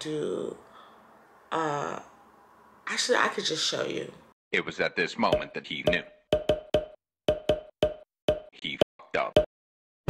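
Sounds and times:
dry wood-block hits: 5.3s - 8.6s.

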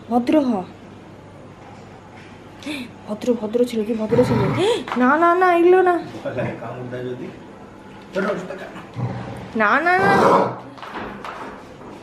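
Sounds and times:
dog growling: 8.8s - 10.6s.

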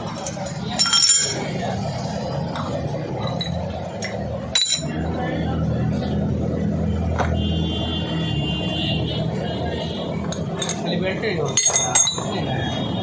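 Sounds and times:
metal parts and tools clinking: 0.0s - 1.6s, 3.2s - 5.0s, 10.2s - 12.4s.

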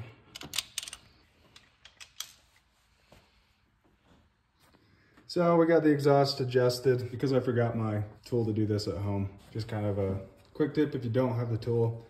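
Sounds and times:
wrench clicking on metal: 0.3s - 2.4s.

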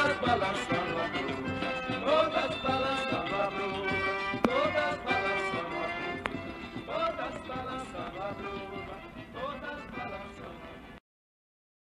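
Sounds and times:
trio folk dance music: 0.0s - 11.0s.

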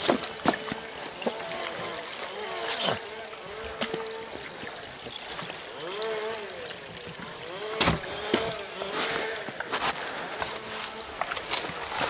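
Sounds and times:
motor buzzing: 0.1s - 12.0s
footsteps on wet gravel: 8.0s - 12.0s.

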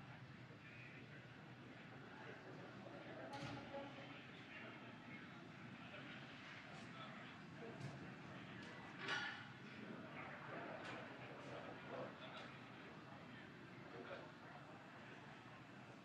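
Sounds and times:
faint voices over radio: 0.0s - 16.0s.

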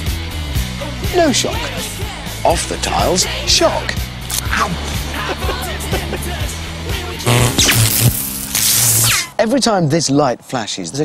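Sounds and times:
music: 0.0s - 9.4s
steady low tones: 7.2s - 9.0s
loud hissing static noise: 7.3s - 9.2s.

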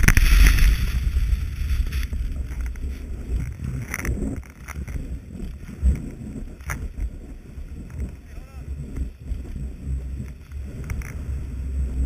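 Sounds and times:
skis hissing on snow: 0.0s - 3.1s.

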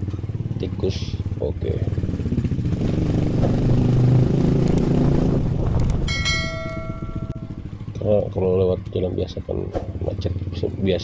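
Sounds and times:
motor scooter engine running: 0.0s - 8.9s
bell-like ring: 6.1s - 7.6s.

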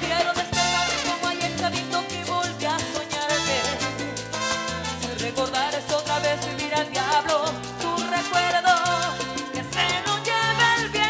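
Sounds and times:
salsa band playing: 0.0s - 11.0s
person singing: 5.3s - 11.0s.

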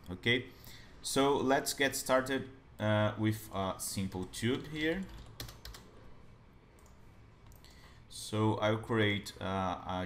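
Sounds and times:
computer keyboard keystrokes: 4.7s - 5.9s.

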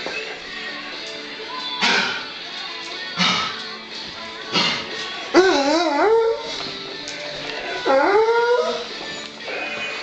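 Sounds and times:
radio music: 0.0s - 10.0s
dog howling: 5.3s - 6.6s, 7.6s - 10.0s.

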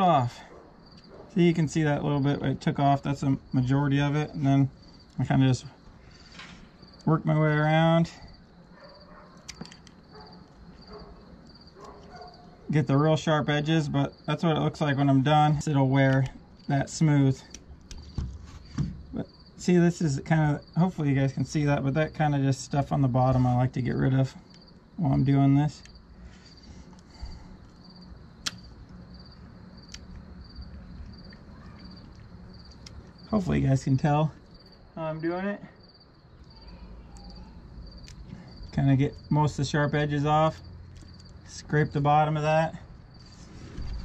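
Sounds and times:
crickets chirping: 0.0s - 44.0s.

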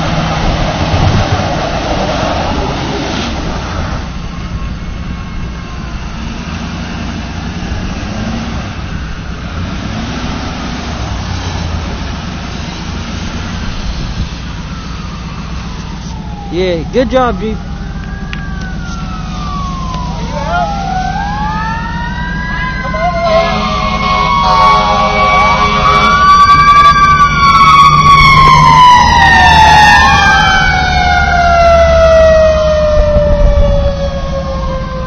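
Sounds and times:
sirens wailing: 0.0s - 35.0s
steady held siren note: 2.4s - 9.7s, 11.1s - 35.0s.

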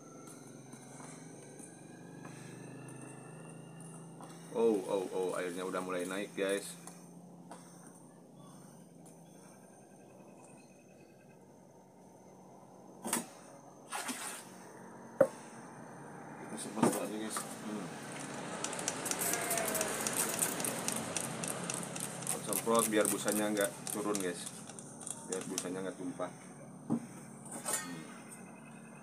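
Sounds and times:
spray bottle squirting: 18.1s - 25.6s.

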